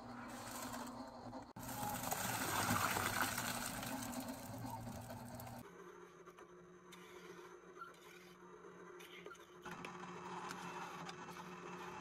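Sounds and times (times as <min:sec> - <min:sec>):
wet concrete pouring: 0:01.6 - 0:05.6.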